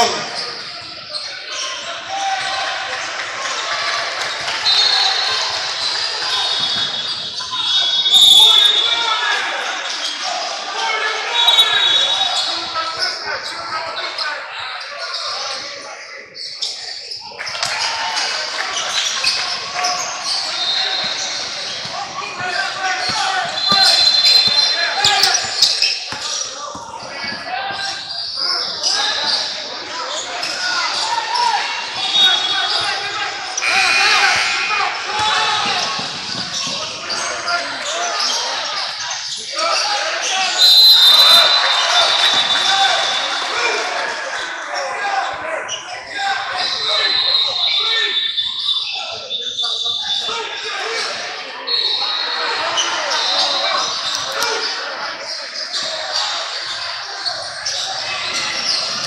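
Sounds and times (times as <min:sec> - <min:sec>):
people talking: 0:00.0 - 0:59.0.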